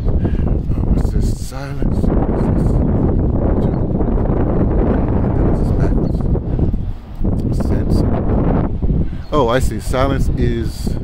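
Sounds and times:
wind buffeting microphone: 0.0s - 11.0s.

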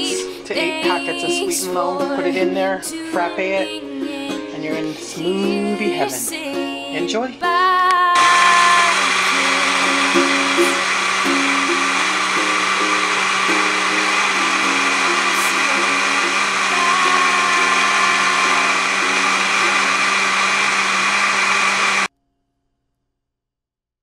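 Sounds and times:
blender running at high speed: 8.2s - 22.1s.

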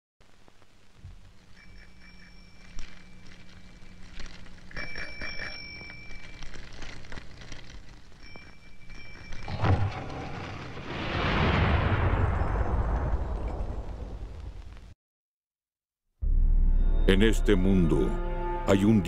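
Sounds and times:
low steady hum: 0.2s - 12.1s
high ringing bell tones: 1.5s - 6.9s, 8.1s - 10.6s
explosion-like roar: 9.5s - 14.3s.

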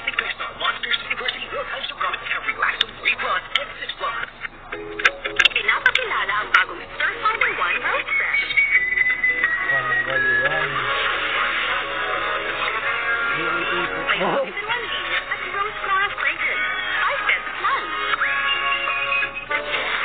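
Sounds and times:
background music: 4.7s - 20.0s
person speaking: 13.3s - 14.8s.

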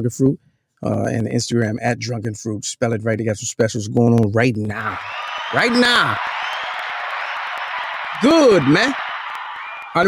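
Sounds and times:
applause-like crowd clatter: 5.0s - 10.0s.

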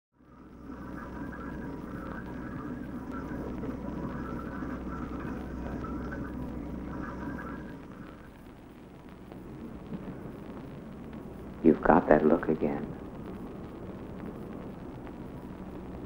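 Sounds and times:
oatmeal bubbling in a saucepan: 0.2s - 11.6s
low steady hum: 0.2s - 16.0s.

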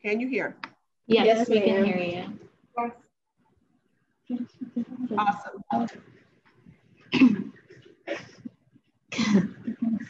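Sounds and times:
person coughing: 7.2s - 7.5s, 9.2s - 9.6s.

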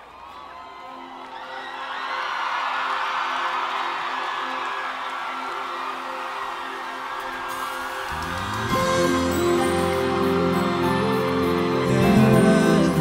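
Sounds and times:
audience cheering and whooping: 0.0s - 13.0s
live band sustained chord: 7.5s - 13.0s.

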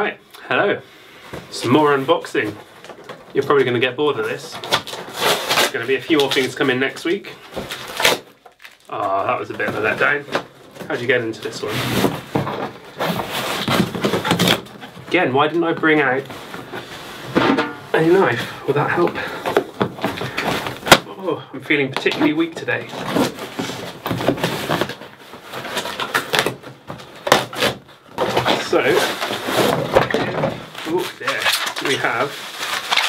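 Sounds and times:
packing tape ripping off cardboard: 4.5s - 6.6s, 7.6s - 9.0s, 12.9s - 15.0s, 20.0s - 21.1s, 22.8s - 33.0s.

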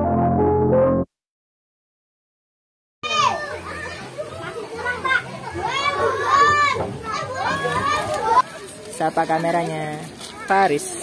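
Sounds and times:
children shouting: 3.0s - 8.7s.

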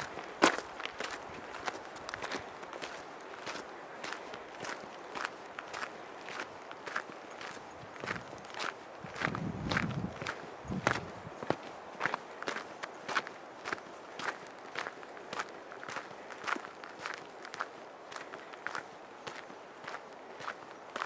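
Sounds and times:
footsteps on dirt trail: 0.0s - 21.0s.

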